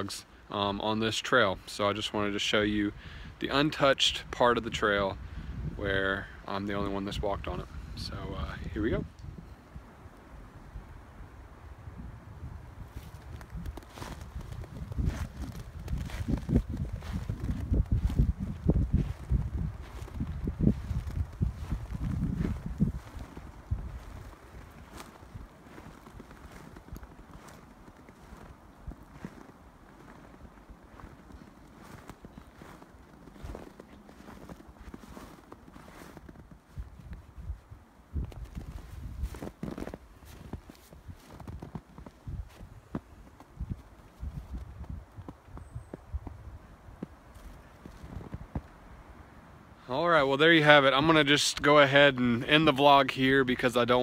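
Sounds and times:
low rumbling noise: 7.4 - 35.9
footsteps crunching in snow: 12.8 - 48.8.

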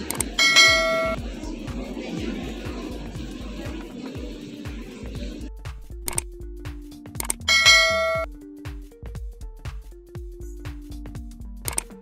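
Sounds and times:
background music with low beat: 0.0 - 12.0
bright bell-like chime: 0.4 - 1.2, 7.5 - 8.3.

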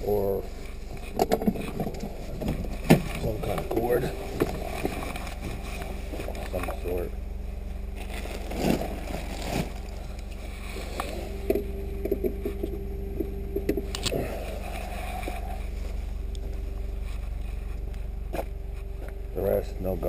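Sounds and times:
vehicle engine idling: 0.0 - 20.0.

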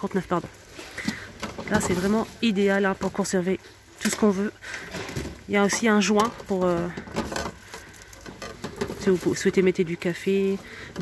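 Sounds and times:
plastic containers clicking and knocking: 1.0 - 3.4, 4.0 - 11.0.

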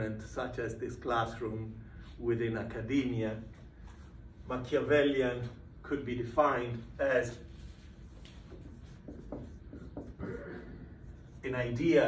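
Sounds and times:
marker writing on whiteboard: 7.0 - 12.0.

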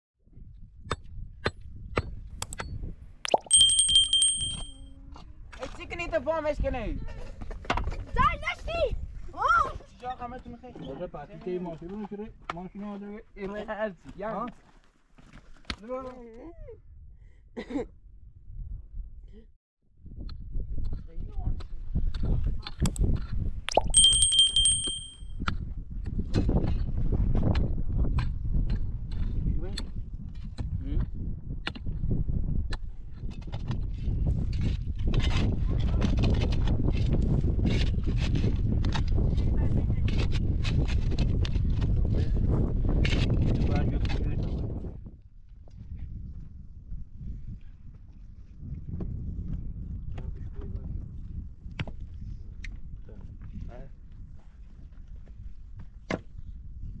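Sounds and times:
click and bell chime: 3.3 - 4.8, 23.7 - 25.2
high metallic ringing tone: 3.3 - 4.8, 23.7 - 25.3.

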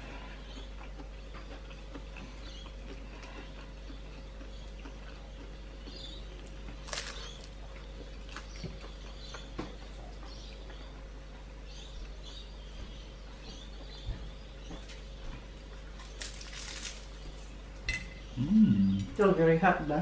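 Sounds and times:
man chewing food: 0.0 - 19.2
low hum: 0.0 - 20.0.

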